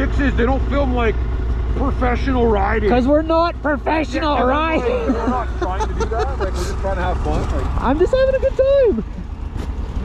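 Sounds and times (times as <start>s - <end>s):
men talking indistinctly: 0.0s - 7.9s
snowmobile engines idling: 0.0s - 10.0s.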